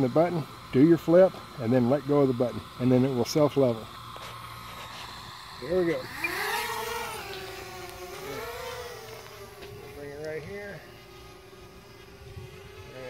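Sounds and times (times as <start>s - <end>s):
quadcopter motors whining: 0.0s - 13.0s.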